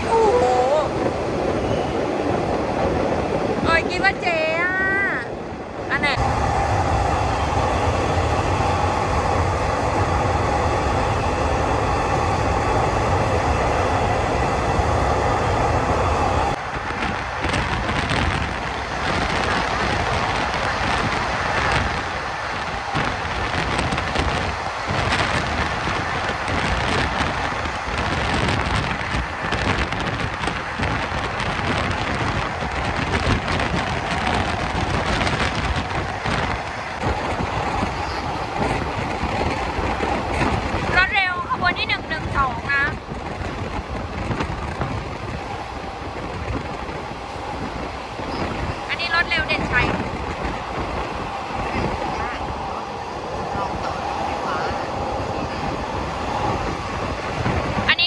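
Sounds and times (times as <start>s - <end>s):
train running: 0.0s - 58.0s
wheels and air rushing: 0.0s - 58.0s.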